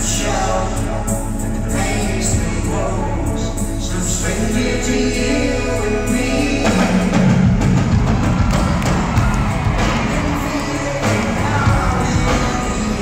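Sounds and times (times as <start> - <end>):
live rock band playing: 0.0 - 13.0
drums hitting: 6.7 - 13.0.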